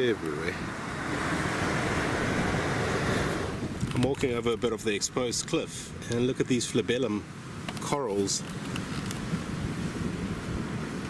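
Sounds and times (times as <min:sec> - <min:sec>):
sea surf: 0:00.0 - 0:11.0
wind over microphone: 0:00.0 - 0:11.0.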